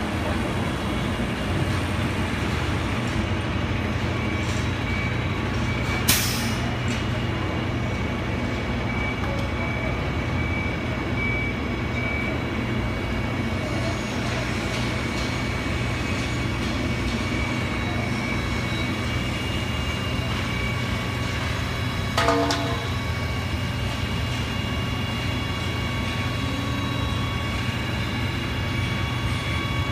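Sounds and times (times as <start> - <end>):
heavy vehicle engine running: 0.0 - 29.9
street traffic: 0.0 - 29.9.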